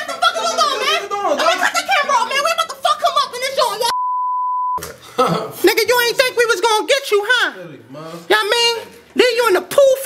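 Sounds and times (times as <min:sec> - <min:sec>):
test-tone beep: 0:03.9 - 0:04.8.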